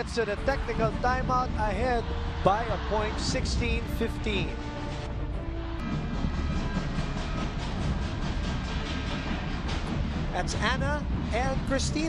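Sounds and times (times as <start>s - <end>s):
crowd cheering: 0.0s - 4.8s.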